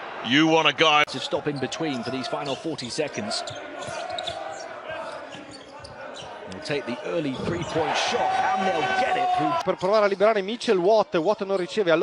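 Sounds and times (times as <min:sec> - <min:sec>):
arena crowd murmur: 0:00.0 - 0:09.8.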